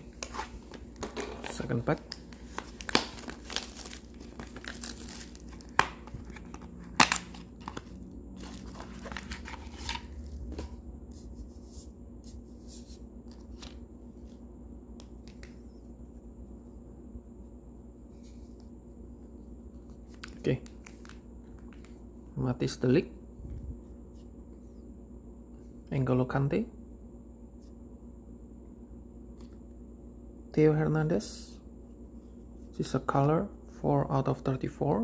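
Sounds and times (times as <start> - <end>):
cards being handled: 0.0 - 14.4, 19.7 - 22.0
card pack wrapper tearing: 1.9 - 10.2.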